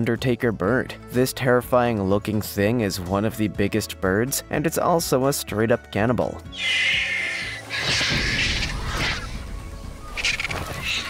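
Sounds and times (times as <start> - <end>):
background music: 0.0 - 11.0
storks squabbling: 6.5 - 11.0.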